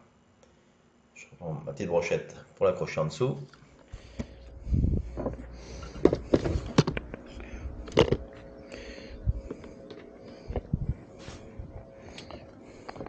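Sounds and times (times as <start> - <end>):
low rumble: 4.0 - 13.0.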